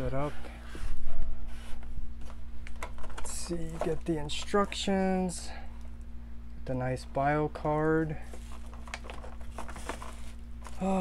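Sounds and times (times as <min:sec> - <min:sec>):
plastic packaging crinkling: 0:02.6 - 0:04.9, 0:08.2 - 0:11.0.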